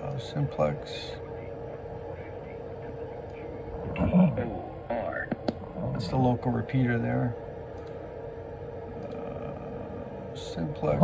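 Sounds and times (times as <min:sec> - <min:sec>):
steady hum: 0:00.0 - 0:11.0
person mumbling: 0:03.0 - 0:06.2, 0:09.0 - 0:10.3
computer mouse clicks: 0:07.7 - 0:08.0, 0:09.0 - 0:09.2.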